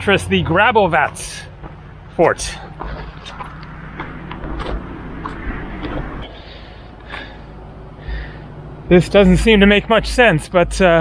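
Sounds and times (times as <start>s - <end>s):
footsteps on dirt and gravel: 0.0s - 7.5s
low rumble on microphone: 1.4s - 10.8s.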